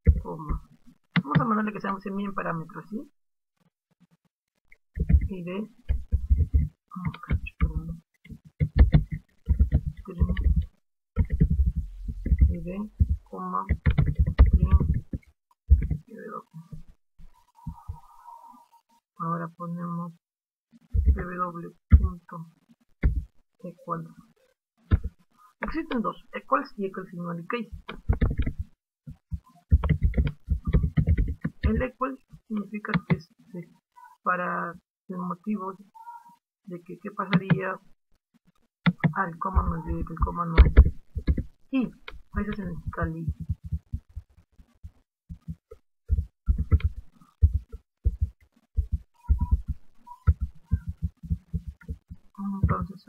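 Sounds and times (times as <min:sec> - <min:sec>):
person speaking: 0:00.0 - 0:03.1, 0:05.0 - 0:20.2, 0:20.9 - 0:24.2, 0:24.9 - 0:28.6, 0:29.3 - 0:37.8, 0:38.9 - 0:44.1, 0:45.3 - 0:53.0
keyboard typing: 0:05.0 - 0:16.9, 0:23.0 - 0:23.3, 0:27.7 - 0:33.2, 0:37.3 - 0:37.8, 0:38.8 - 0:53.0.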